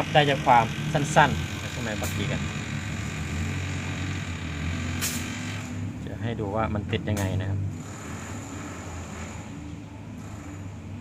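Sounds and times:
low mechanical drone: 0.0s - 11.0s.

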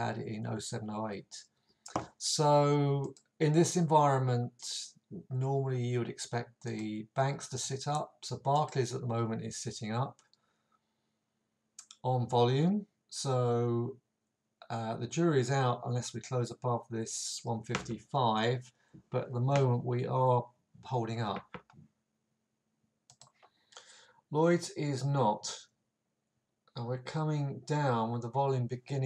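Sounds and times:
computer mouse clicks: 23.1s - 23.5s.

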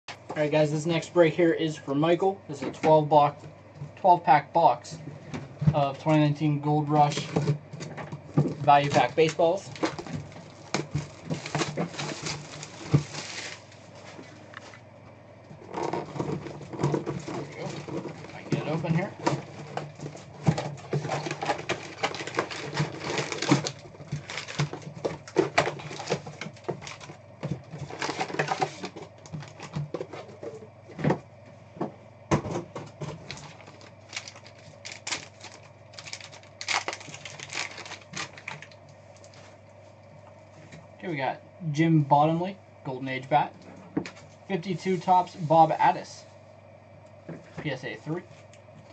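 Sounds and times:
foil packs crinkling: 8.2s - 14.2s, 15.7s - 30.2s, 33.0s - 39.4s.

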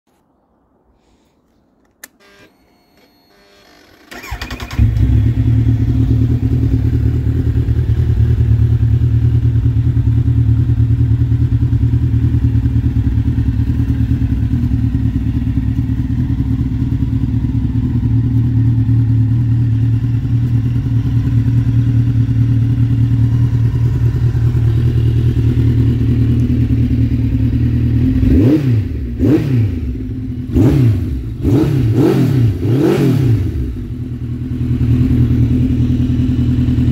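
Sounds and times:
motorcycle engine starting and idling: 2.0s - 36.9s.

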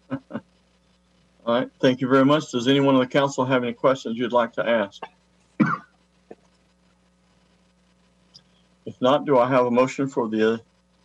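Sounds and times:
faint low microphone hum: 0.0s - 11.0s
person coughing: 5.6s - 5.9s.

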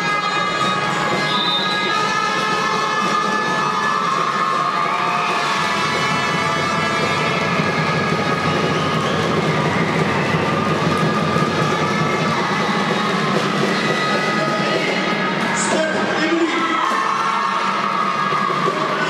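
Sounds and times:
crowd cheering and clapping: 0.0s - 19.0s.

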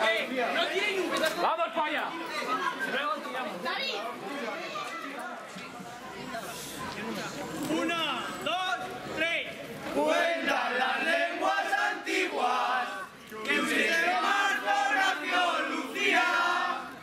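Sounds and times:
young men singing in unison: 10.0s - 16.9s.

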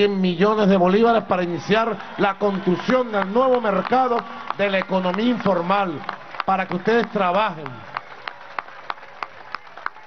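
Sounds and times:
scattered handclaps: 1.3s - 10.0s.

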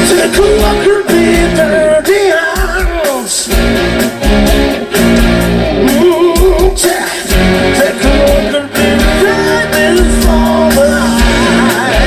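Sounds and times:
man singing lead vocal: 0.0s - 3.6s, 5.7s - 12.0s
drums: 0.0s - 12.0s
electric guitar: 0.0s - 12.0s.

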